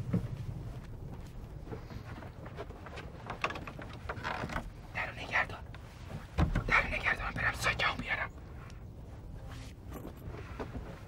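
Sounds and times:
creaks and small knocks: 0.0 - 11.0.

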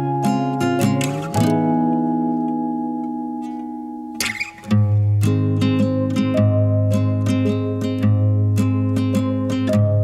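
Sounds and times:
acoustic guitar chord ringing: 0.0 - 10.0.

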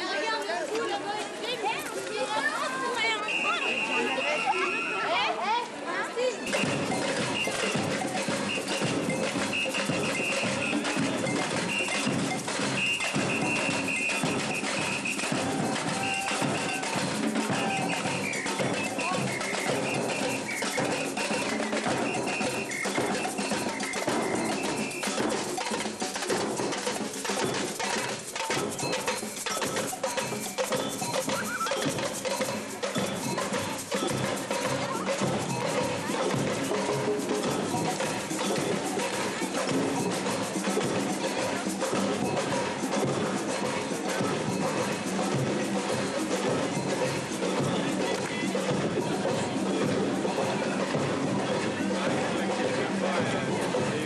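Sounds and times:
percussion band playing: 0.0 - 54.0
cowbell-like metallic strikes: 6.4 - 54.0.

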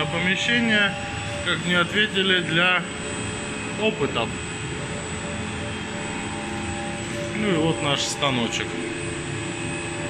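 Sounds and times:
milling machine spindle whining: 0.0 - 10.0.

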